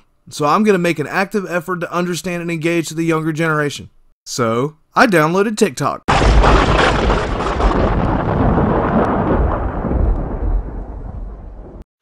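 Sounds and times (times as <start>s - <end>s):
rolling thunder: 6.1s - 11.9s.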